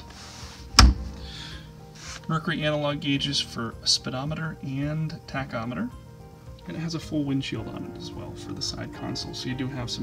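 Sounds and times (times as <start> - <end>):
quiet background music: 0.0 - 10.0
soft rubbing: 1.9 - 2.5.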